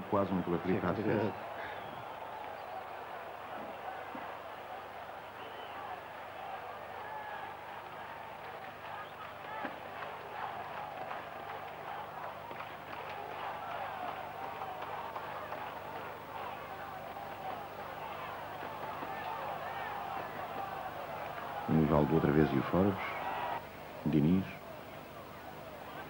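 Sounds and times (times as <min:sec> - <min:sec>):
crowd murmur: 0:00.0 - 0:26.0
spectators shouting: 0:00.0 - 0:26.0.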